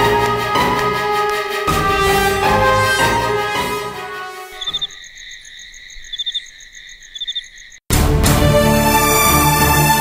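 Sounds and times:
loud music: 0.0 - 4.2
crickets chirping: 4.3 - 7.9.

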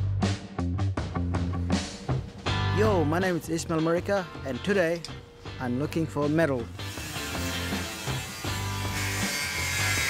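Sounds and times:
background music with bass: 0.0 - 10.0
angle grinder cutting metal: 6.6 - 10.0.

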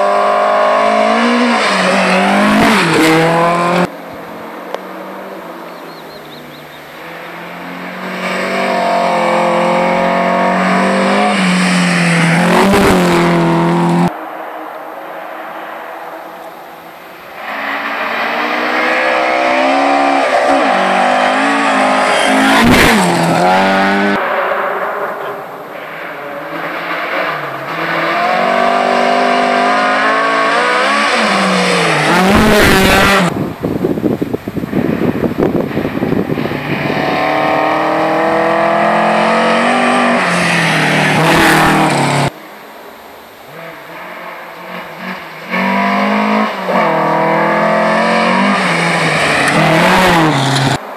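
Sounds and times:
rally car engine revving: 0.0 - 14.2, 17.3 - 42.4, 43.4 - 50.9.

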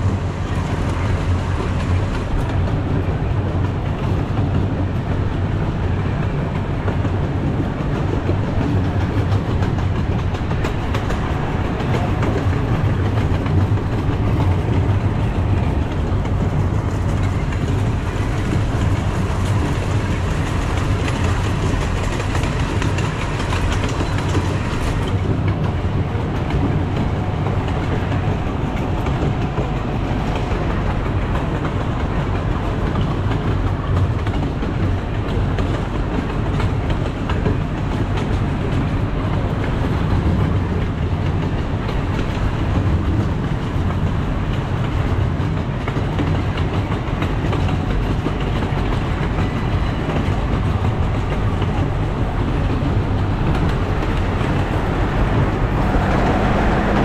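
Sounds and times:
miniature train rumble and rail clatter: 0.0 - 57.0.

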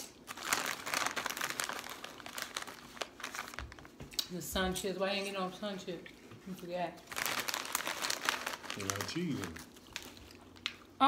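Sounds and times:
food packaging crinkling: 0.0 - 4.0, 7.0 - 11.0.

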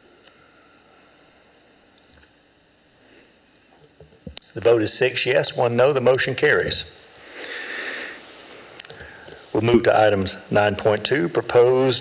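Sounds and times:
person breathing in: 7.2 - 9.5.

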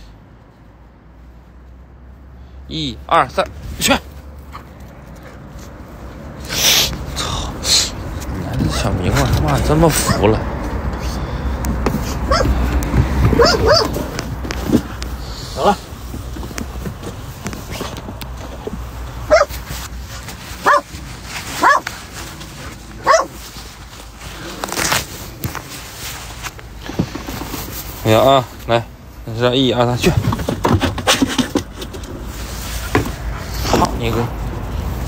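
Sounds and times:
dog barking: 10.0 - 10.4, 12.2 - 12.6, 13.3 - 14.0, 19.2 - 19.6, 20.6 - 20.9, 21.6 - 21.9, 23.0 - 23.4.

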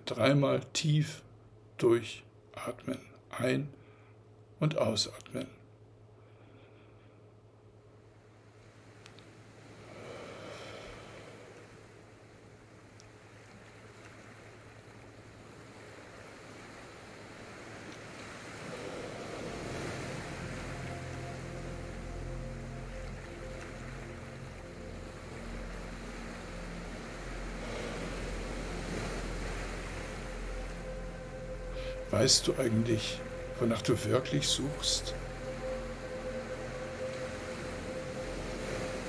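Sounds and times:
soft rushing like ocean surf: 8.0 - 39.0
sustained low drone tones: 18.6 - 39.0.

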